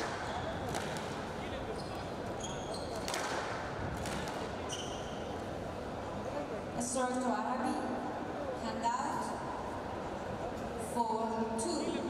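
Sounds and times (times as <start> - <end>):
squash ball strike: 0.0 - 1.4, 3.0 - 4.6
shoes squeaking on wooden floor: 1.7 - 3.1.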